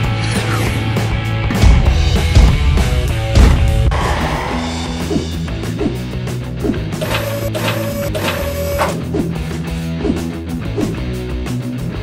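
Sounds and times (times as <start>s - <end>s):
background music: 0.0s - 12.0s
toy mechanical whirring: 7.0s - 9.0s.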